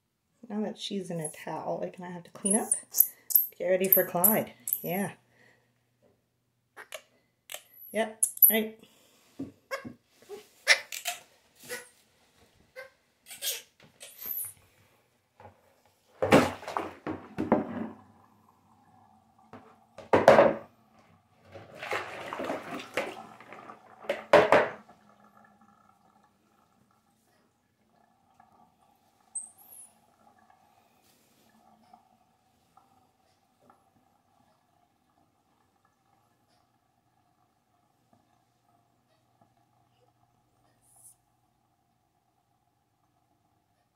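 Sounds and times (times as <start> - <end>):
water splashing into a sink: 16.2 - 18.4, 21.4 - 30.3.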